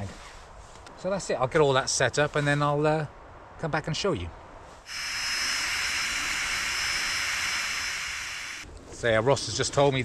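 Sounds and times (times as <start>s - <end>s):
air hissing through valve: 4.8s - 8.6s
faint high whistle: 4.9s - 8.6s.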